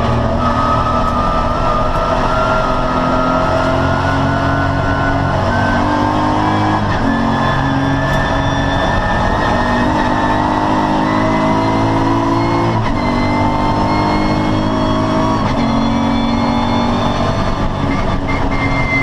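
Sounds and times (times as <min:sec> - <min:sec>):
race car engine at full throttle: 0:00.0 - 0:19.0.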